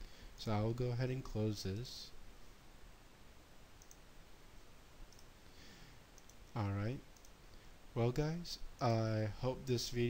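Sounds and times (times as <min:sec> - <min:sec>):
faint computer mouse clicks: 0:03.8 - 0:04.0, 0:05.1 - 0:05.3, 0:06.2 - 0:06.4, 0:07.2 - 0:07.4.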